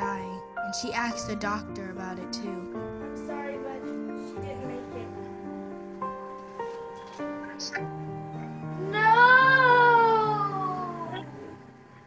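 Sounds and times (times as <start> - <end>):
girl wailing cry: 8.8 - 11.2.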